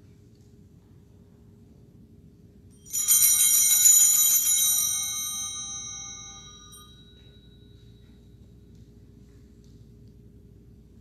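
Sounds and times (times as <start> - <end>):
small bells ringing: 2.7 - 8.7.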